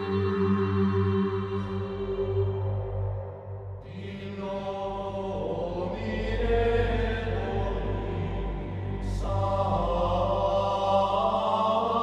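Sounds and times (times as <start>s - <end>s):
steady low drone: 0.0s - 12.0s.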